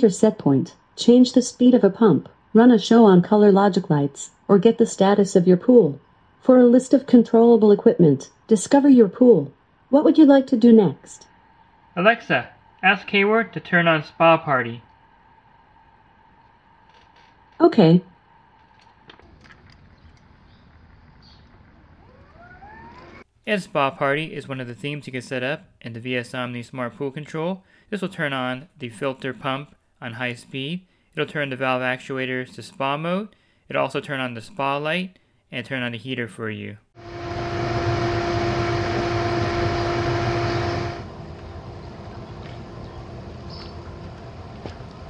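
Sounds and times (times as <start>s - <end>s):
steady background hum: 0.0s - 23.2s, 37.0s - 45.0s
whine rising in pitch: 10.4s - 19.2s, 20.7s - 23.3s, 37.0s - 45.0s
spa jets churning water: 37.0s - 45.0s
valve actuator motor running: 37.0s - 45.0s.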